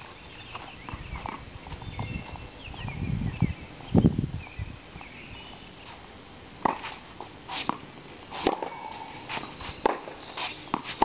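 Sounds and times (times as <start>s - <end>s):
birds chirping faintly: 0.0s - 6.1s, 8.7s - 11.0s.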